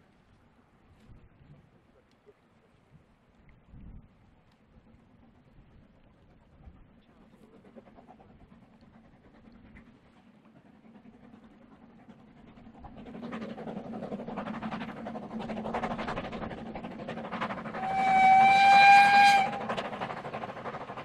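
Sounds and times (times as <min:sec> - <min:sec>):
steam locomotive exhaust beats: 0:04.9 - 0:21.0
steam whistle blast: 0:17.7 - 0:19.8.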